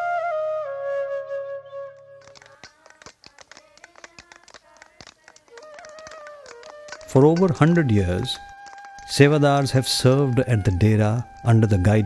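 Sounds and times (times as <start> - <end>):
hand hammers tapping stones: 2.4 - 11.6.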